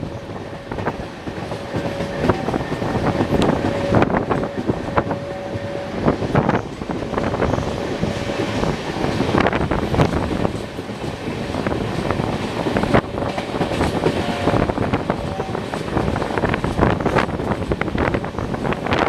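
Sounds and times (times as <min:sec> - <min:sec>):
rushing wind: 0:00.0 - 0:19.0
train rumble: 0:00.0 - 0:19.0.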